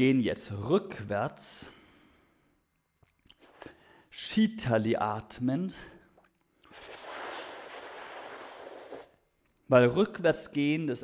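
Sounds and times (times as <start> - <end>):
hissing in-breath: 6.6 - 9.2.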